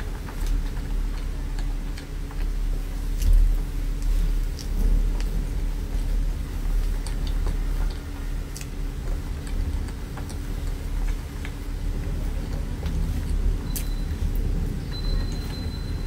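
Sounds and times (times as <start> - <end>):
wet chewing and mouth clicks: 0.0 - 15.7
low rumble and hum: 0.0 - 16.0.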